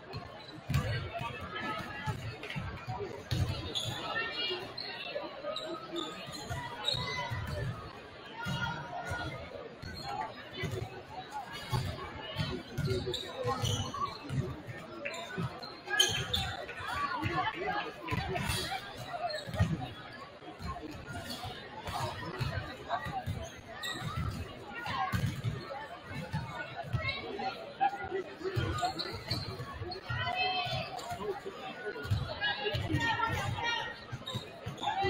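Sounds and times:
crowd chatter echoing: 0.0s - 35.0s.

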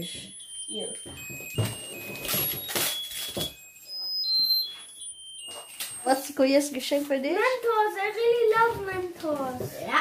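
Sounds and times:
high electronic beeps: 3.8s - 5.1s.

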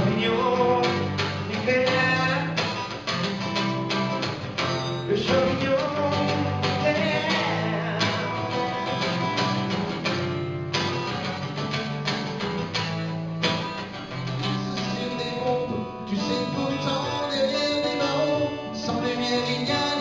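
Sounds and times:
acoustic guitars strumming: 0.0s - 20.0s
held bass notes: 0.0s - 20.0s.

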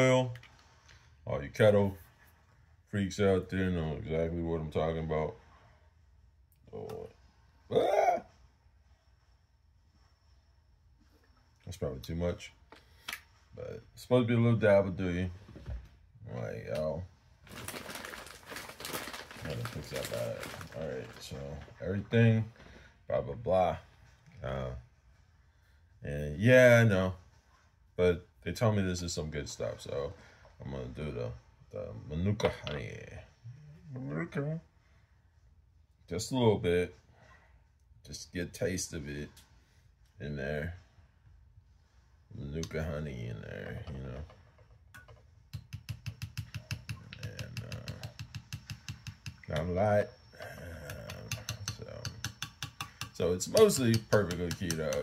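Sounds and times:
man talking: 0.0s - 0.4s, 1.2s - 2.0s, 2.9s - 5.4s, 6.7s - 7.1s, 13.6s - 15.4s, 16.2s - 17.1s, 19.3s - 24.8s, 26.0s - 27.2s, 28.0s - 34.6s, 38.1s - 39.3s, 42.3s - 44.3s, 47.0s - 48.2s, 49.4s - 52.3s, 53.1s - 55.0s
crackling rustle of handling: 17.4s - 22.1s
spoon clicking against glass mug: 51.1s - 55.0s.

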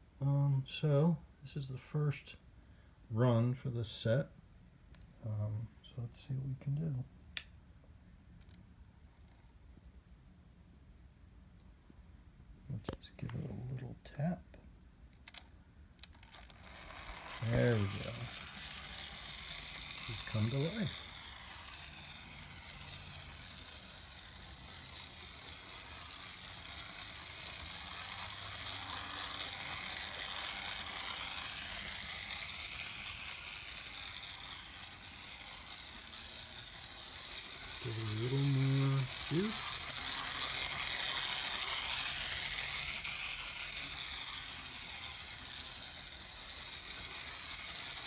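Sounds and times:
model train motor whirring: 3.5s - 4.0s, 8.4s - 9.6s, 15.2s - 48.0s.

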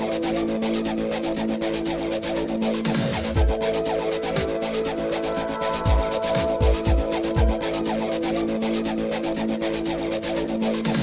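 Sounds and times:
held synth chords: 0.0s - 11.0s
scratchy ticking percussion: 0.2s - 11.0s.

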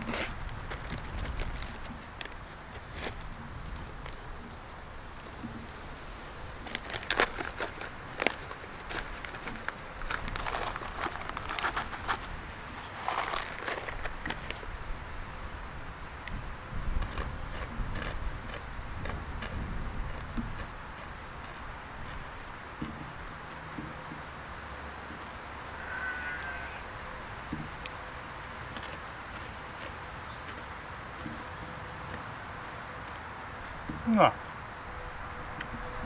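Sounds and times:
packaging crinkling and rustling: 0.0s - 4.2s, 6.6s - 14.6s.

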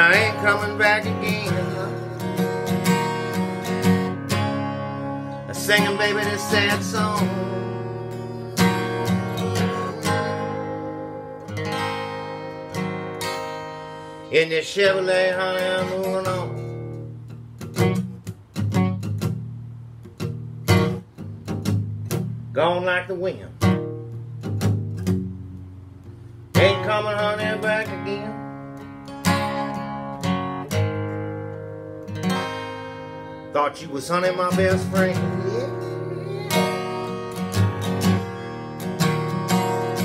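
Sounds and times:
acoustic guitar strummed slow blues: 0.0s - 40.0s.

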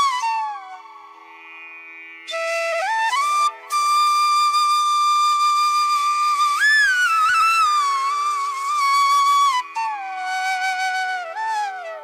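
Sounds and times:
solo flute holding long notes: 0.0s - 12.0s.

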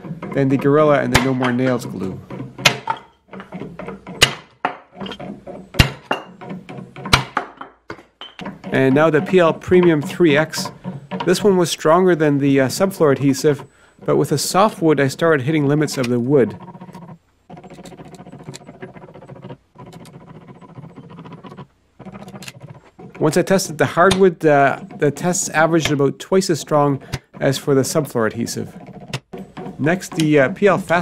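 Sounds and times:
mechanical whir with fast clicking: 15.9s - 23.3s.

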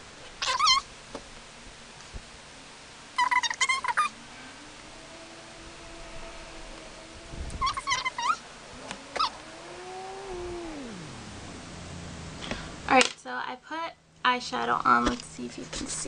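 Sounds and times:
cat chirping: 0.4s - 0.8s, 3.2s - 4.2s, 7.5s - 11.2s
cat yowling: 0.4s - 0.8s, 3.2s - 11.5s.

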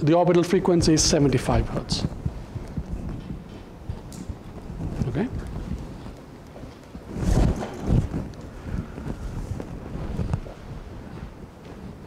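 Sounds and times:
microphone handling thuds: 0.8s - 6.2s, 7.0s - 12.0s.

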